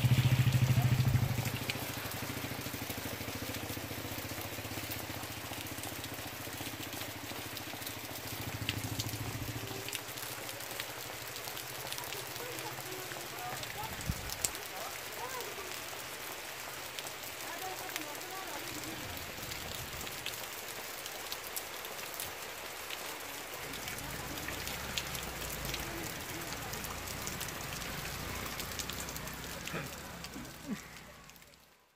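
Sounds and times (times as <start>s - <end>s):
steady rain falling: 0.0s - 31.9s.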